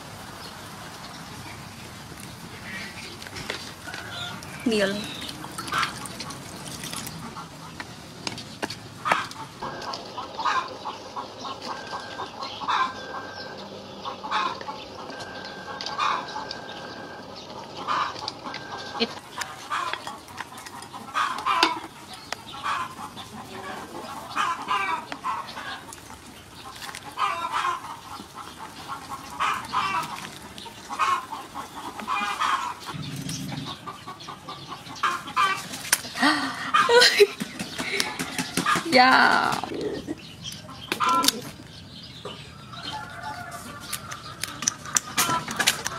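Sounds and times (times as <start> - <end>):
chickens clucking: 0.0 - 45.9.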